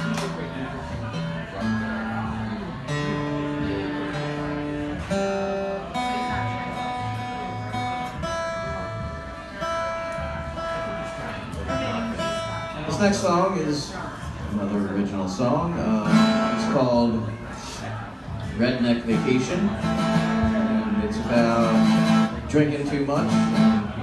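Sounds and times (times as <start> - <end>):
acoustic guitar strumming chords: 0.0 - 13.8, 14.6 - 17.5, 18.3 - 24.0.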